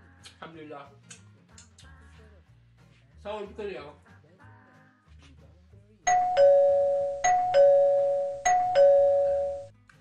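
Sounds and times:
two-tone doorbell chime: 6.1 - 9.7.

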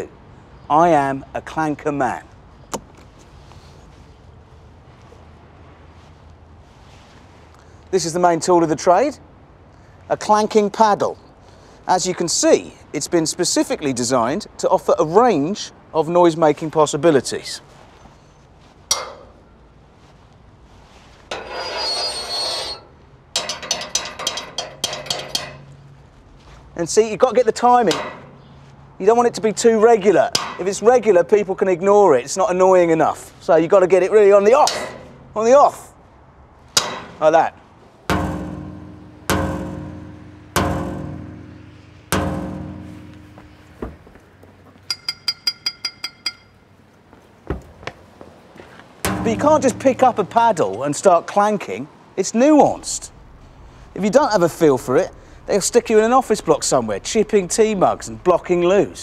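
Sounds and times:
metal bar clanking against metal: 18.9 - 19.5, 21.3 - 25.8, 27.7 - 28.7, 30.2 - 31.1, 34.5 - 35.4, 36.7 - 44.0, 44.9 - 46.6, 49.0 - 51.1, 52.6 - 59.0
small knock: 38.1 - 44.2, 49.0 - 50.7
thump: 38.1 - 44.2, 49.0 - 50.5.

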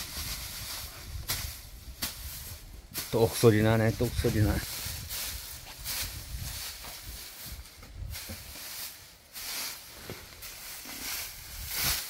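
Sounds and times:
dry straw rustling: 0.0 - 12.0.

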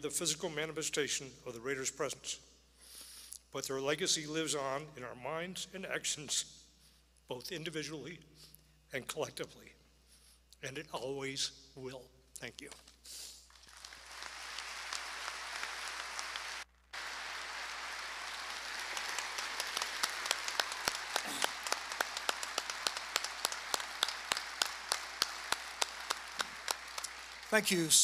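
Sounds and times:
large audience applauding: 13.5 - 28.0
sharp single claps: 18.8 - 27.6.

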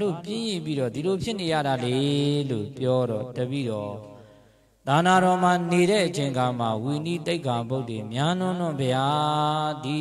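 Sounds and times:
person chanting into a microphone: 0.0 - 10.0.

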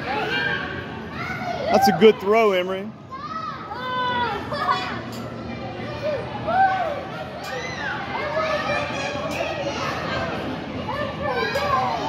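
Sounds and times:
din of kids playing: 0.0 - 12.0
children shouting: 5.8 - 12.0.

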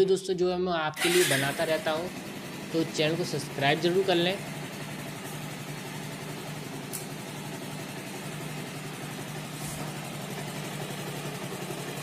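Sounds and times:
motorcycle engine idling: 1.0 - 12.0.

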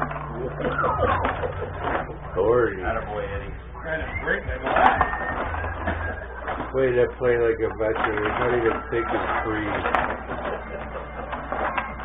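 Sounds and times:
table hockey rods rattling: 0.0 - 3.5, 4.5 - 12.0
murmured talk: 0.4 - 11.0.

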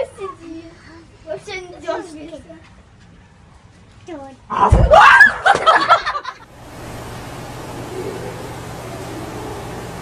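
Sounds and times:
low hum: 6.5 - 10.0.

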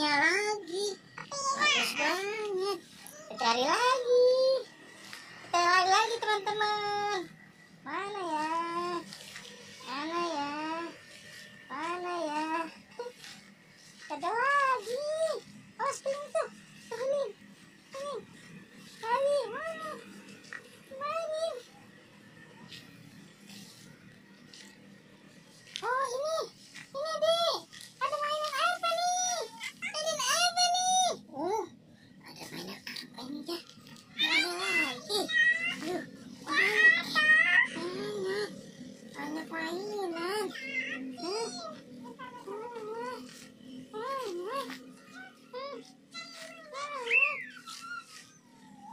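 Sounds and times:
child's sing-song voice: 32.4 - 48.5.

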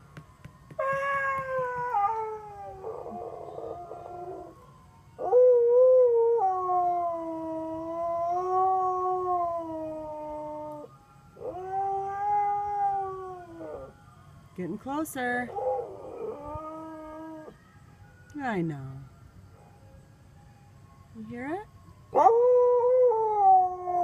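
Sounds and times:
dog howling: 0.8 - 4.5
ice cream truck tune: 17.8 - 22.2.

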